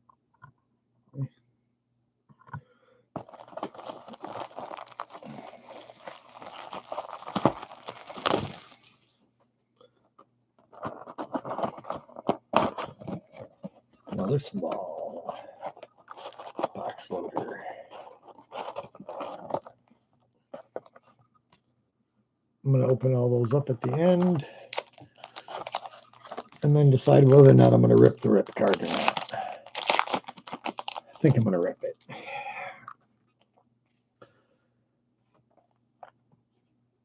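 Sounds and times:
plastic wrap tearing and crinkling: 3.2s - 9.0s, 15.0s - 19.8s, 23.8s - 31.5s.

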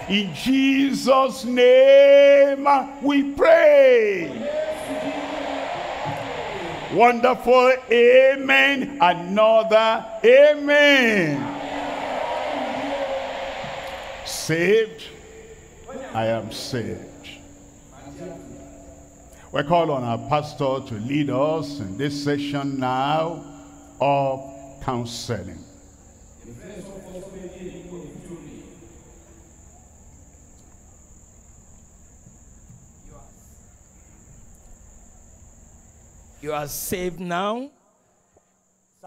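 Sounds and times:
crickets trilling: 0.0s - 39.0s.

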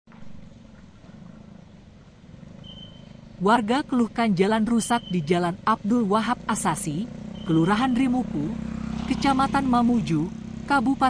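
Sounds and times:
motorbikes running: 0.1s - 11.0s.

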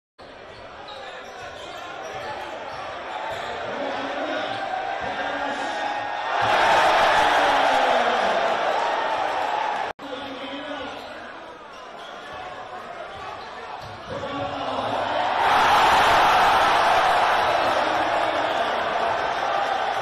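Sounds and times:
crowd cheering in echoing gym: 0.2s - 20.0s.

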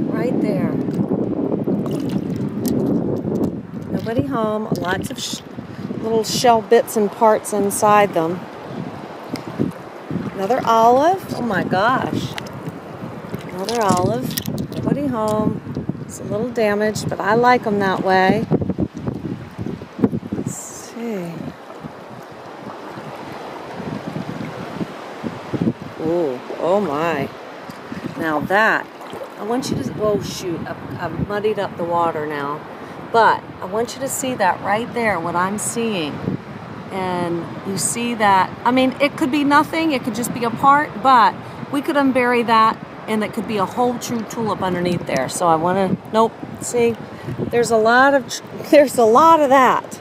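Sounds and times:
wind buffeting microphone: 0.0s - 50.0s
water sloshing from wading: 0.7s - 33.4s.

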